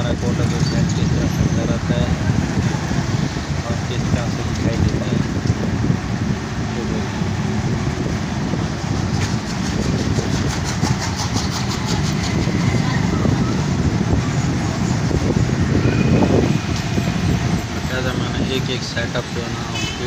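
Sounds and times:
vehicle rumbling along street: 0.0 - 20.0
rapid ticking rattle: 9.4 - 12.4.

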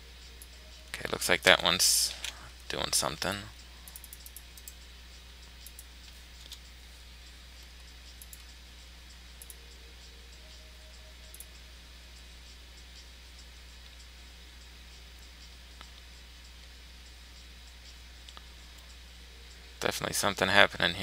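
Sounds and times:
steady low hum: 0.0 - 21.0
computer mouse clicks: 3.9 - 4.8, 5.6 - 6.7, 7.6 - 8.6, 9.4 - 9.6, 11.3 - 11.5.

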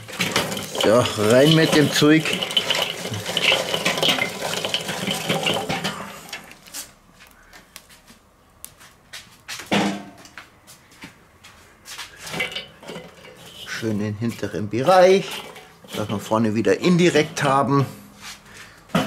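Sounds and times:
charcoal clattering onto grate: 0.0 - 6.9, 9.7 - 10.3, 12.1 - 17.8.

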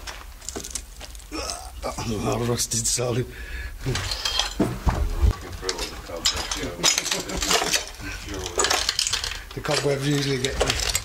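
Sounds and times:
debris clinking underfoot: 0.0 - 2.6, 3.8 - 11.0
low voices: 1.3 - 11.0
low thumps: 4.6 - 6.1
people laughing: 6.4 - 8.4.

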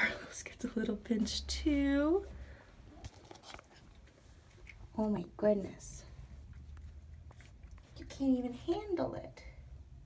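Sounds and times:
cat licking and chewing: 6.2 - 8.2.

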